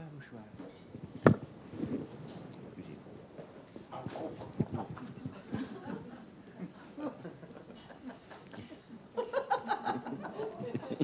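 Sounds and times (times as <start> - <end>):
cloth handling knocks: 1.2 - 1.5.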